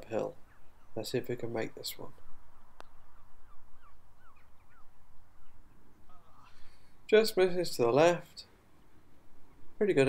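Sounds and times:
bird chirping: 0:00.0 - 0:07.1.

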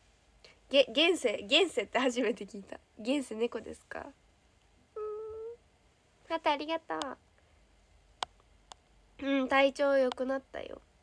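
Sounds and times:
woman humming: 0:04.9 - 0:05.6.

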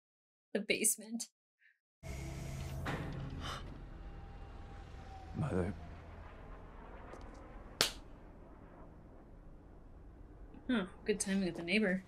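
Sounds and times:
sharp crack: 0:05.8 - 0:10.7.

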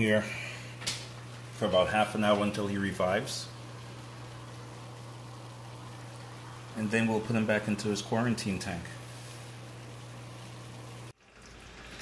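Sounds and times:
aquarium filter water sound: 0:00.0 - 0:12.0
low electric hum: 0:00.0 - 0:12.0
bubbling aerated water: 0:02.8 - 0:12.0.

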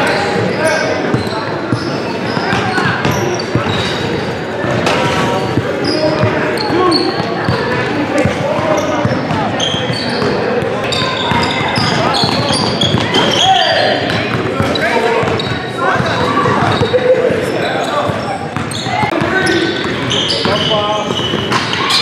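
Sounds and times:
players' voices and shouts: 0:00.0 - 0:22.0
sneaker squeaks: 0:00.0 - 0:22.0
basketball bouncing on court: 0:00.4 - 0:17.0, 0:18.0 - 0:22.0.

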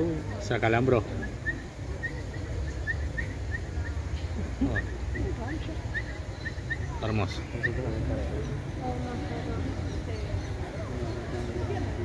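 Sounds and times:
bird chirping: 0:00.2 - 0:12.0.

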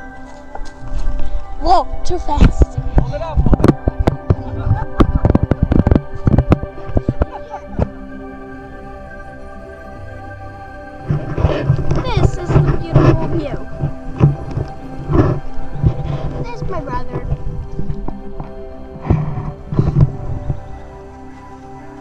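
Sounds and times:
soft background music: 0:00.0 - 0:22.0
people laughing and squealing: 0:04.2 - 0:05.8, 0:07.2 - 0:07.9.

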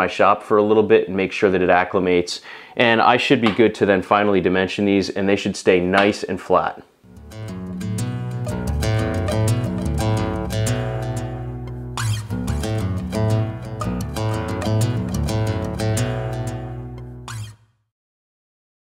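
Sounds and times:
bass line: 0:07.1 - 0:17.4
strummed guitar: 0:07.1 - 0:17.6.

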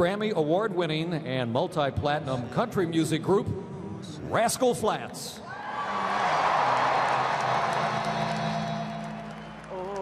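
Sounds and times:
stadium crowd cheering: 0:05.4 - 0:10.0.

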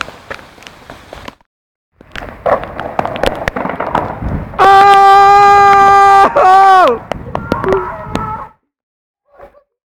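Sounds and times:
person shouting: 0:04.6 - 0:08.5.

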